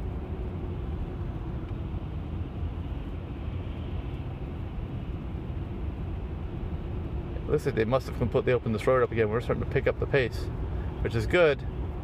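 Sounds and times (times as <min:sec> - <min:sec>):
road and tyre rumble: 0:00.0 - 0:12.0.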